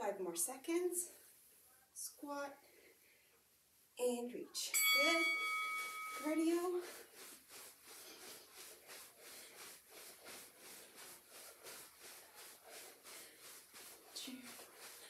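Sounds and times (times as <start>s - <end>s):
footfalls jogging on carpet: 5.2s - 15.0s.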